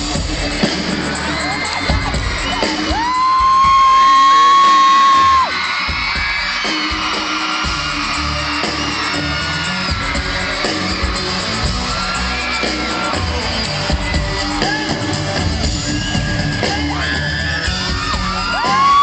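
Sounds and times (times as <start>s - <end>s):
crowd cheering and whooping: 0.0s - 19.0s
loud amplified concert music: 0.0s - 19.0s.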